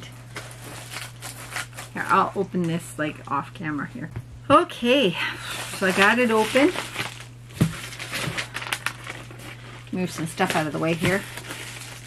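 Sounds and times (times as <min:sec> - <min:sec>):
paper mailer crinkling and rustling: 0:00.2 - 0:02.4, 0:05.4 - 0:12.0.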